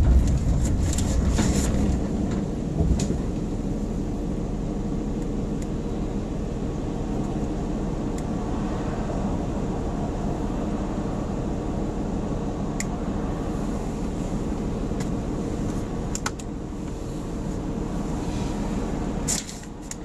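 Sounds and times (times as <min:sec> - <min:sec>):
car road rumble and idle: 0:00.0 - 0:20.0.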